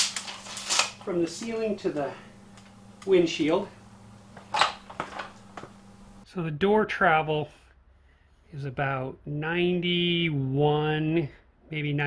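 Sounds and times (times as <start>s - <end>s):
steady low hum: 0.0s - 6.6s.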